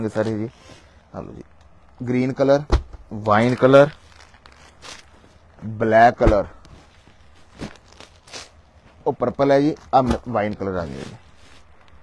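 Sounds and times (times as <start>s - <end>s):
plastic bag rustling: 3.0s - 9.0s, 9.7s - 12.0s.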